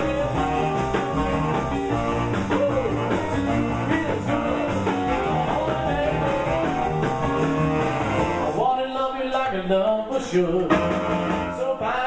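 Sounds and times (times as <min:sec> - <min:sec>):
saxophone: 0:00.0 - 0:08.6, 0:10.6 - 0:12.0
live rock and roll band: 0:00.0 - 0:12.0.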